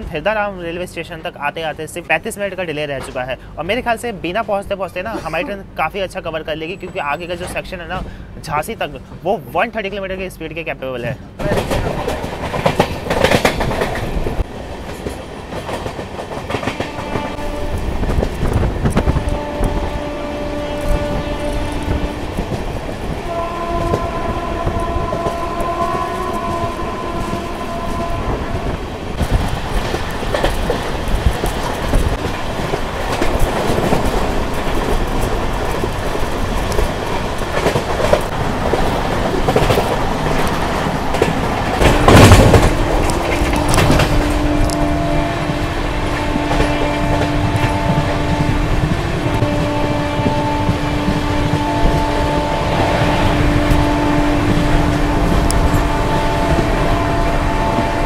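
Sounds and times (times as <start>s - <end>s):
rail and wind noise: 0.0s - 58.0s.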